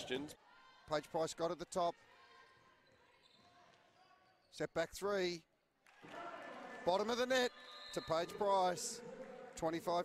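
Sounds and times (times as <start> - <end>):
faint basketball court sounds: 0.0 - 10.0.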